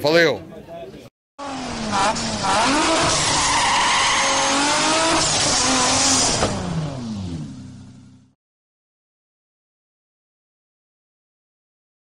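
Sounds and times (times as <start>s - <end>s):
tyres skidding: 1.4s - 8.1s
sports car engine revving: 1.4s - 8.4s.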